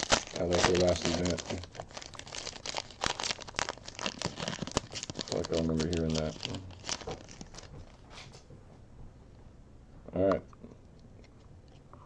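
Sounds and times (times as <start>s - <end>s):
foil wrapper crinkling: 0.0s - 8.0s.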